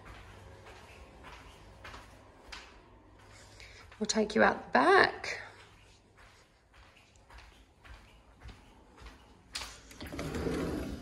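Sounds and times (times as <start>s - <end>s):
footsteps on tiled floor: 0.0s - 11.0s
sliding glass door opening: 9.8s - 11.0s.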